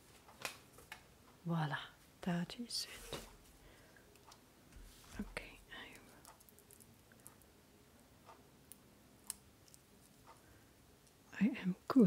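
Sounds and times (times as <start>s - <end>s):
breathy whisper: 5.2s - 6.3s.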